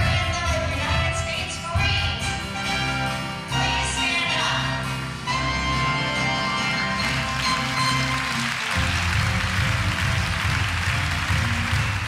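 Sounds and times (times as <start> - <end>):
drums: 0.0 - 12.0
upright bass: 0.0 - 12.0
horn section: 2.3 - 12.0
grand piano: 2.5 - 12.0.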